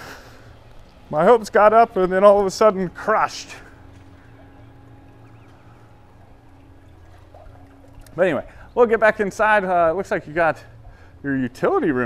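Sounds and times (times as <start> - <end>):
low hum of outdoor machinery: 0.0 - 12.0.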